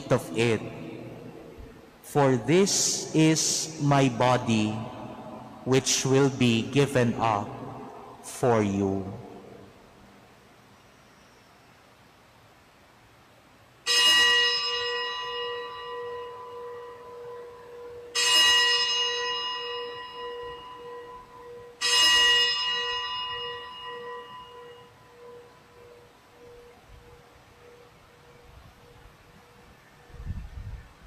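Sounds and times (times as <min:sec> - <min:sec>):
low hum: 0:00.0 - 0:11.4
bell ringing: 0:13.9 - 0:29.6.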